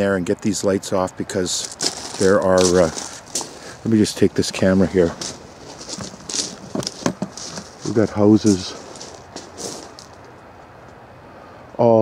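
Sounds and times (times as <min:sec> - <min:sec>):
brief rustles: 0:01.6 - 0:03.9, 0:04.7 - 0:10.3.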